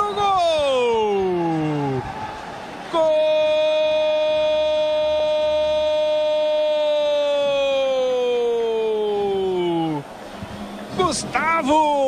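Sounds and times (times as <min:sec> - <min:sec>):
narrator shouting goal call: 0:02.9 - 0:10.0.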